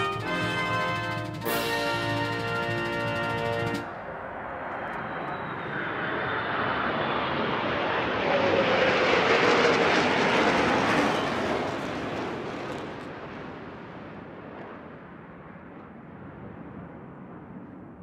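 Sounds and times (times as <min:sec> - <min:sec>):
jet aircraft engine roar: 0:00.0 - 0:18.0.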